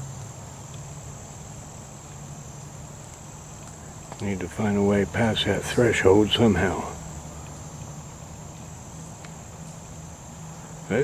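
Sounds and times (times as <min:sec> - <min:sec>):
high-pitched insect chorus: 0:00.0 - 0:11.0.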